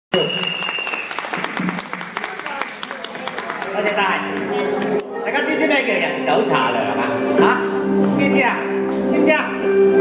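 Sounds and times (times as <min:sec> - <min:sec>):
audience applauding: 0:00.1 - 0:05.0.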